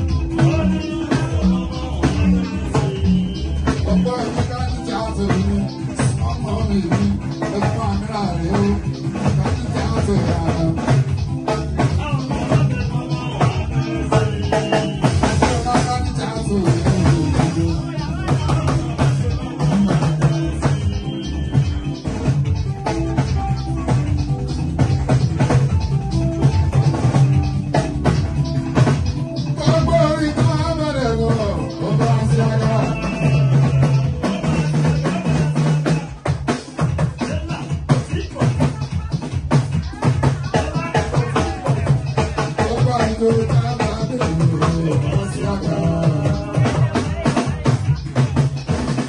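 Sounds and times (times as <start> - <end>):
hand drums and percussion: 0.0 - 49.0.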